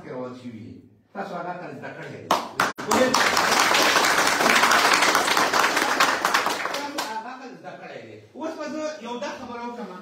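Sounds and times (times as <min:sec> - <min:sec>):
men clapping hands: 0:02.3 - 0:07.2.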